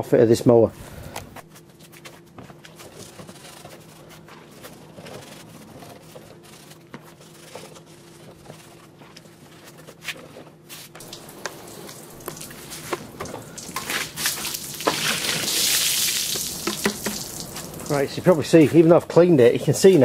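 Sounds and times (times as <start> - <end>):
water poured from bucket: 11.0 - 18.1
water splashing and dripping: 11.0 - 18.4.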